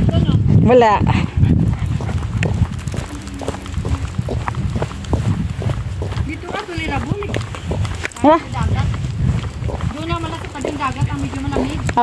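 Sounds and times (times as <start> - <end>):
low rumble: 1.1 - 12.0
footsteps on asphalt: 1.6 - 12.0.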